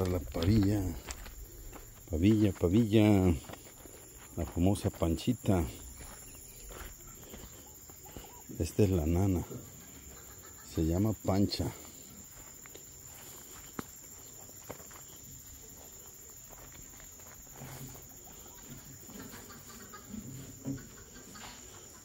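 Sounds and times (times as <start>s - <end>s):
hen clucking softly: 9.5s - 10.9s, 18.4s - 22.0s.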